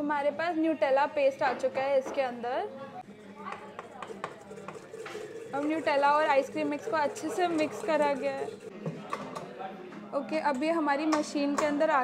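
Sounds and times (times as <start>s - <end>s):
beater stirring cream in steel bowl: 3.2s - 9.3s.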